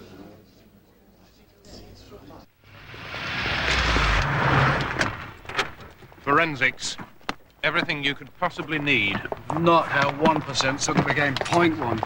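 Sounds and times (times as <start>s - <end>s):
car passing by: 2.6s - 6.3s.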